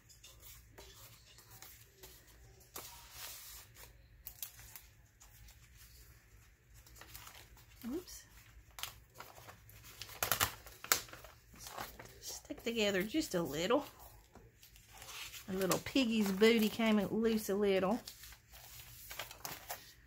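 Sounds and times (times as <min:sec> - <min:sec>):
paper pages rustling: 0:00.3 - 0:20.0.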